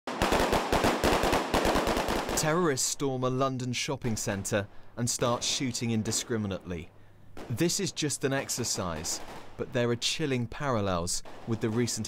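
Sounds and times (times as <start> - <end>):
automatic rifle fire: 0.1 - 2.4.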